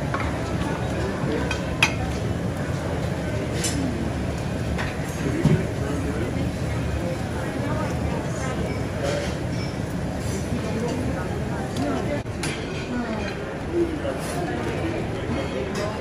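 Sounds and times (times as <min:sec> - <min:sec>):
dishes and cutlery clinking: 0:00.0 - 0:02.3, 0:03.5 - 0:03.9, 0:08.4 - 0:13.5, 0:14.2 - 0:16.0
crowd chatter: 0:00.0 - 0:16.0.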